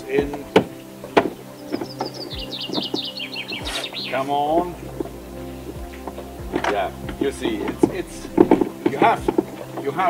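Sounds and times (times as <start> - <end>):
steady low hum: 0.0 - 9.9
songbird chirping: 0.0 - 10.0.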